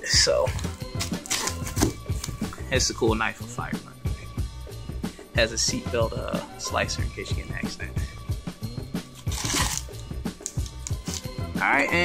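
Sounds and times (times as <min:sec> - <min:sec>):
background music with drum beat: 0:00.0 - 0:12.0
knife slicing tape and cardboard: 0:00.6 - 0:02.4, 0:09.1 - 0:11.3.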